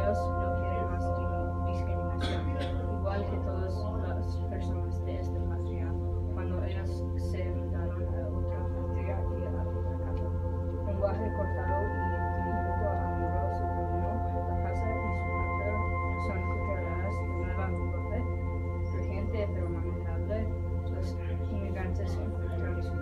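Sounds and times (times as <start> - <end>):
indistinct chatter of voices: 0.0 - 23.0
long held tones: 0.0 - 23.0
low electrical hum: 0.0 - 23.0.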